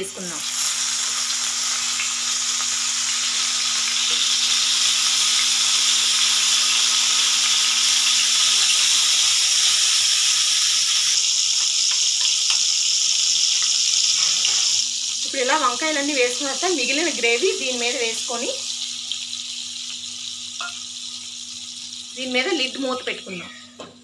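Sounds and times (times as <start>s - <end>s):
eggplants sizzling in hot oil: 0.0s - 23.4s.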